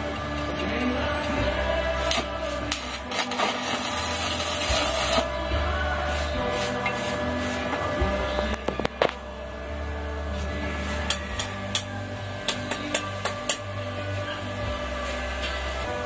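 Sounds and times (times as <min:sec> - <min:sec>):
welding arc crackling and hissing: 0:01.8 - 0:07.8.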